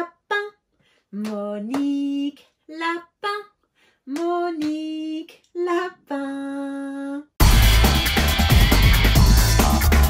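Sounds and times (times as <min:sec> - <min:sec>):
woman calling in sing-song chant: 0:01.2 - 0:07.4.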